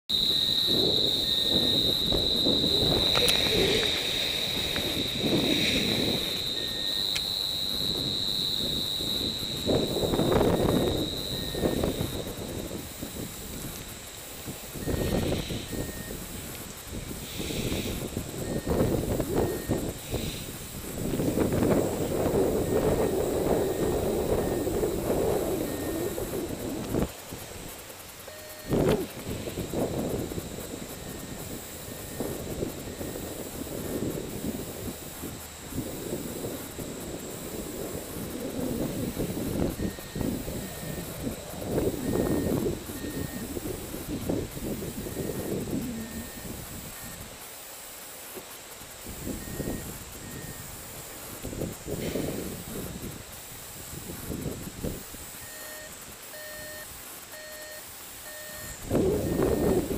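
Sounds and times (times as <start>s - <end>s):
wind buffeting microphone: 0.1s - 47.4s, 49.0s - 56.2s, 58.6s - 59.9s.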